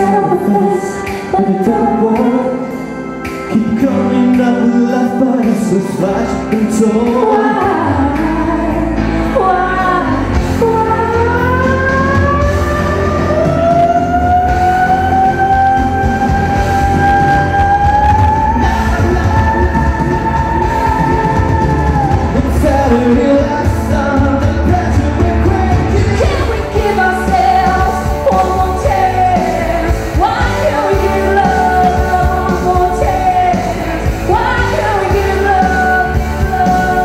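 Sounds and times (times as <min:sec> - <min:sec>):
woman singing into microphone: 0:00.0 - 0:02.7, 0:05.9 - 0:37.0
amplified pop backing music: 0:00.0 - 0:37.0.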